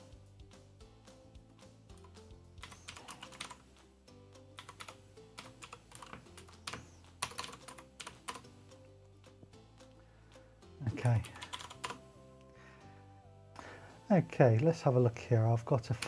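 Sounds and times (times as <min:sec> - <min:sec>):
keyboard typing clicks: 0:04.6 - 0:08.4, 0:11.2 - 0:12.0.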